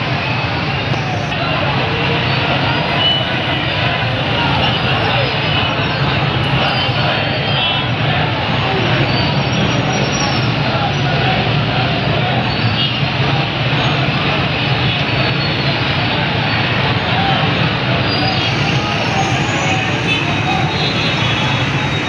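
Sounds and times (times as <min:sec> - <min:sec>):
crowd voices: 0:00.0 - 0:22.0
vehicle noise: 0:00.0 - 0:22.0.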